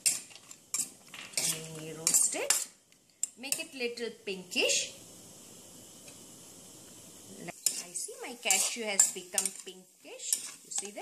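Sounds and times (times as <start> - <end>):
metal spoon scraping pan: 0.0 - 3.8, 7.5 - 11.0
faint frying sizzle: 0.0 - 11.0.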